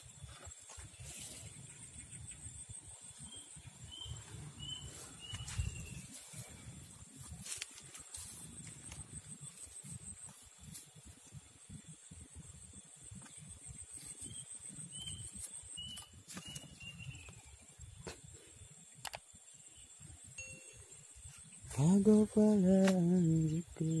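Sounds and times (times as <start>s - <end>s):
bird chirping: 0.0s - 6.8s, 11.8s - 24.0s
wind buffeting microphone: 0.0s - 18.2s
high insect drone: 0.0s - 24.0s.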